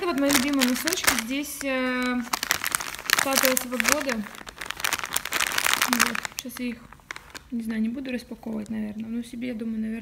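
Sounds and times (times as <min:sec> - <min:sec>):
plastic packets crinkling: 0:00.0 - 0:09.0.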